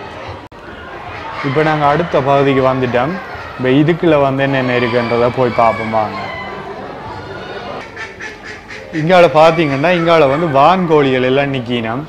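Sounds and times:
shed and crowd noise: 0:00.0 - 0:12.0
duck-like poultry calls: 0:00.8 - 0:02.2, 0:04.5 - 0:11.3.

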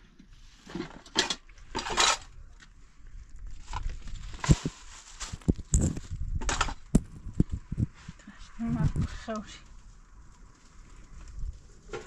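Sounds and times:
plastic bags rustling: 0:03.5 - 0:07.3.

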